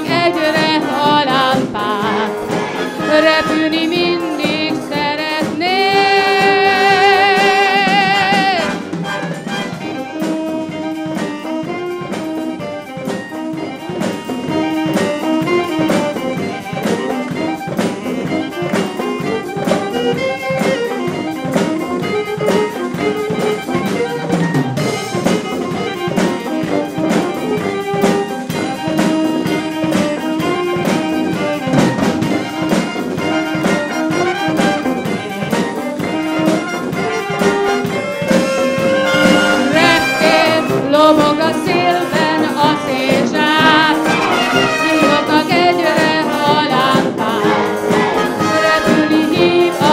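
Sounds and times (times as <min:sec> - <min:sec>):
wind band playing pop arrangement: 0:00.0 - 0:49.9.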